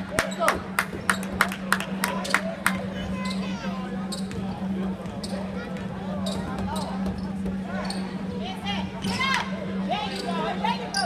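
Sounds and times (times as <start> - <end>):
crowd and player voices: 0.0 - 11.0
steady low hum: 0.0 - 11.0.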